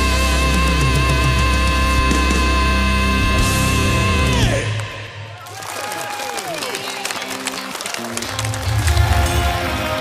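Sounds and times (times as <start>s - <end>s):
heavy metal music: 0.0s - 5.4s, 7.1s - 10.0s
audience applauding and cheering: 4.2s - 10.0s.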